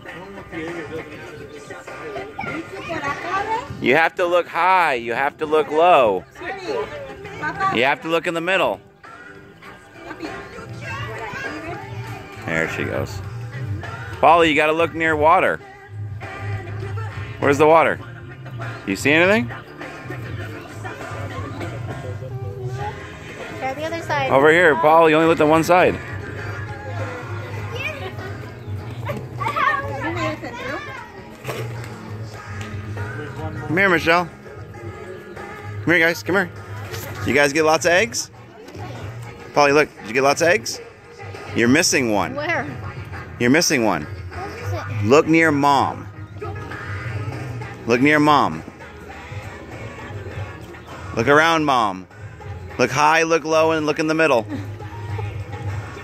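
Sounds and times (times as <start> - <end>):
young children chattering: 0.0 - 3.8, 8.8 - 14.1, 19.6 - 33.8, 38.3 - 39.6, 42.3 - 43.4, 44.2 - 45.1, 46.0 - 47.8
background music: 0.0 - 56.0.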